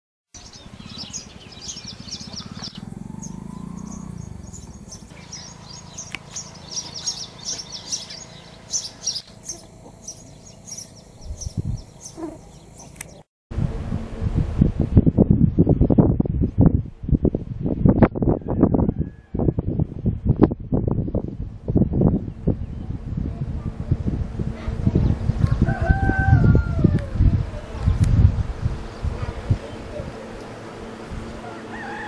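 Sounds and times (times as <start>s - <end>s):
small birds chirping: 0.4s - 13.2s
wind buffeting microphone: 0.4s - 32.0s
low background rumble: 19.0s - 32.0s.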